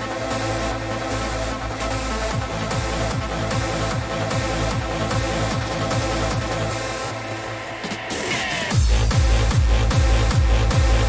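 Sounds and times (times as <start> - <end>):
hardstyle dance music: 0.0 - 11.0
distorted kick drum: 7.9 - 11.0.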